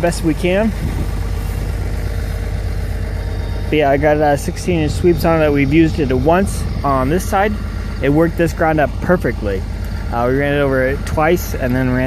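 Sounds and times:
tractor engine droning: 0:00.0 - 0:12.0.

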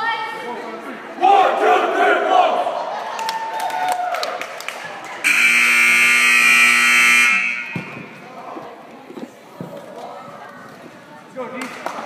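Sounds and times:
crowd voices: 0:00.0 - 0:12.0
scoreboard horn blast: 0:05.2 - 0:08.1
sharp knocks echoing: 0:07.6 - 0:08.2.

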